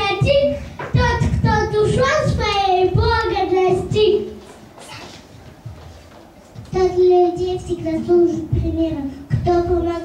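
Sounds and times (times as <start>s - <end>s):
child singing into microphone: 0.0s - 5.2s, 6.6s - 10.0s.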